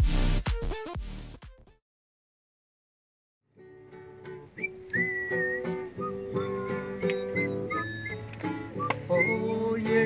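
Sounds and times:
acoustic guitar plucked: 3.5 - 10.0
person whistling a melody: 4.6 - 10.0.

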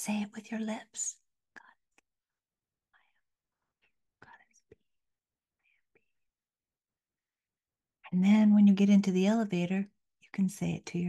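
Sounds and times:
woman whispering: 0.0 - 2.0, 4.2 - 4.8.

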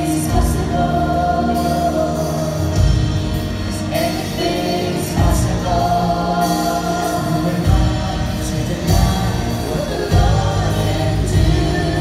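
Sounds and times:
live worship band music: 0.0 - 12.0
voices singing together: 0.0 - 12.0.

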